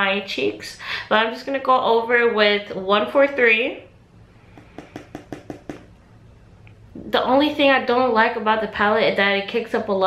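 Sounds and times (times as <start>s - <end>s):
makeup brush tapping on palette: 4.5s - 6.0s.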